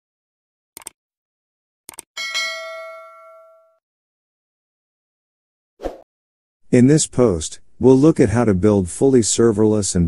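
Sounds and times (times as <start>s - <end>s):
bright bell chime: 2.2s - 3.8s.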